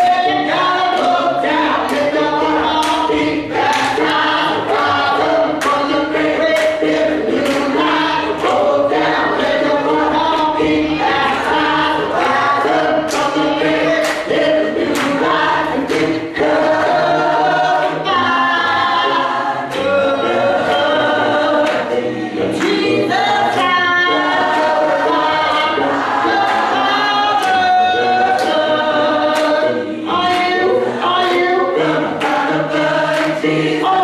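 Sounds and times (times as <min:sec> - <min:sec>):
gospel choir singing: 0:00.0 - 0:34.0
steady beat: 0:00.0 - 0:34.0.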